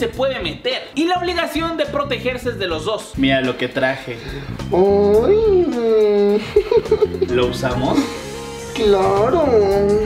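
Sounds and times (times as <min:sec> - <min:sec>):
background music: 0:00.0 - 0:10.0
person exclaiming: 0:04.7 - 0:06.5.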